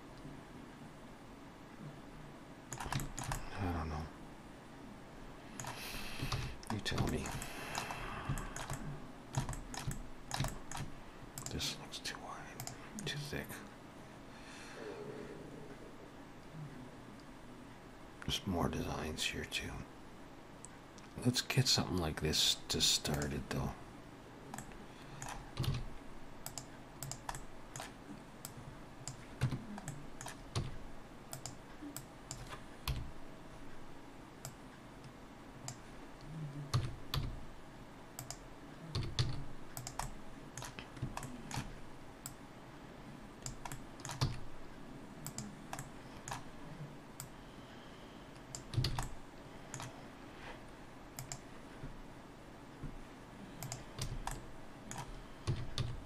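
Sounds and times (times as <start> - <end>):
keyboard keys clicking: 2.7 - 3.5, 5.6 - 11.6, 24.5 - 28.0, 38.2 - 42.4, 43.4 - 44.5, 48.4 - 49.9, 53.6 - 56.0.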